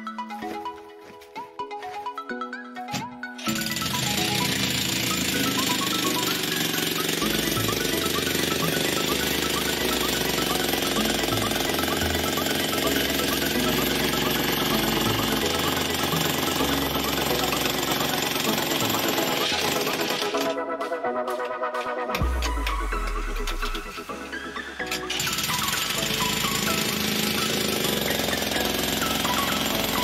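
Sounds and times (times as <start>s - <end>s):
background music with a beat: 0.0s - 30.0s
electric demolition hammer chipping: 3.4s - 30.0s.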